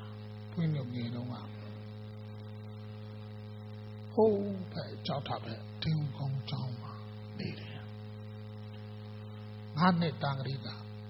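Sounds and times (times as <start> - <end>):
electrical mains hum: 0.0 - 11.0
man speaking: 0.5 - 1.7, 4.1 - 7.9, 9.7 - 10.9.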